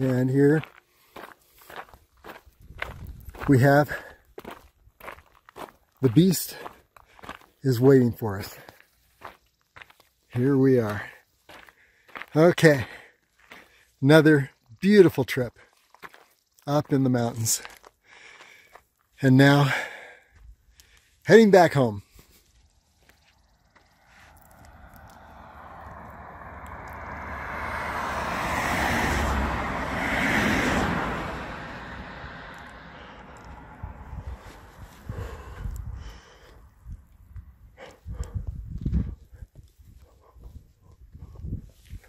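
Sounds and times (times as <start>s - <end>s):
footsteps on gravel: 0.0s - 14.0s, 15.6s - 27.2s
vehicle driving past: 23.0s - 34.8s.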